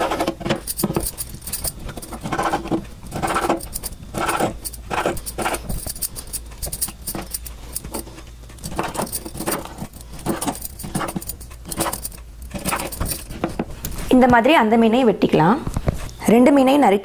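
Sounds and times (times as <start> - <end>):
low steady hum: 0.0 - 17.0
glass bangles clinking: 0.6 - 2.2, 3.2 - 13.4.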